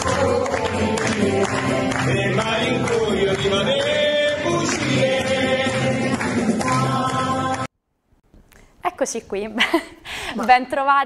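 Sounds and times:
musical accompaniment: 0:00.0 - 0:07.7.

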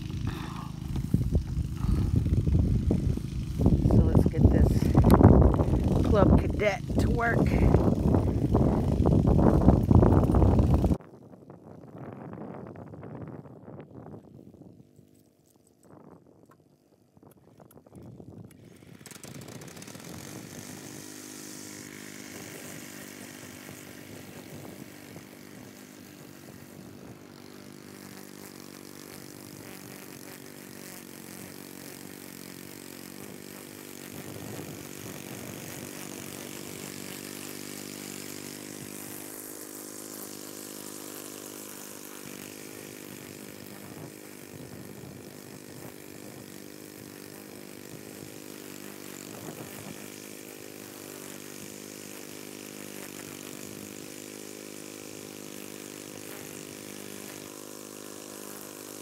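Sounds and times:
lawn mower engine running: 0:00.0 - 0:11.0, 0:17.4 - 0:59.0.

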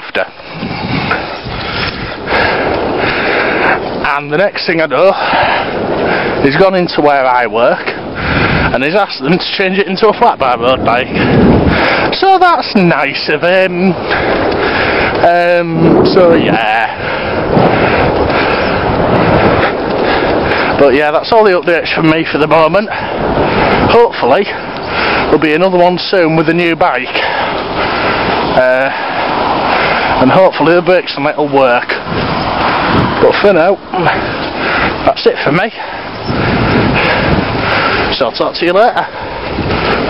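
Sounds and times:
bicycle road noise: 0:00.0 - 0:40.0
wind rushing on microphone: 0:00.0 - 0:40.0.

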